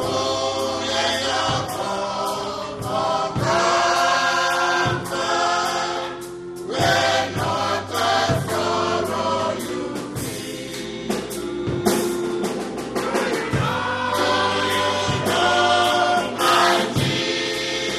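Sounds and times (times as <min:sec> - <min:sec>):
gospel choir singing: 0:00.0 - 0:17.9
percussion hits: 0:00.0 - 0:17.9.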